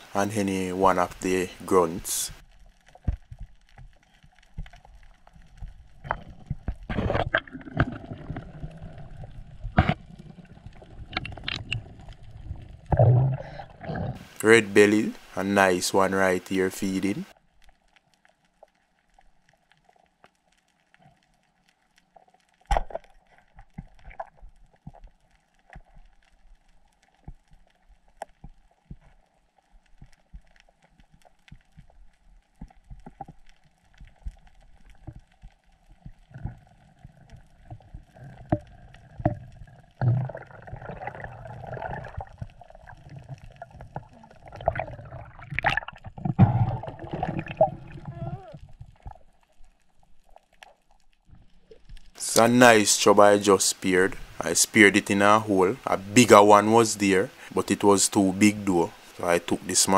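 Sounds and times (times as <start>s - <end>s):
muffled underwater clicks and knocks: 2.9s - 8.5s, 9.2s - 13.4s
water rushing underwater: 4.6s - 15.8s, 36.0s - 50.5s.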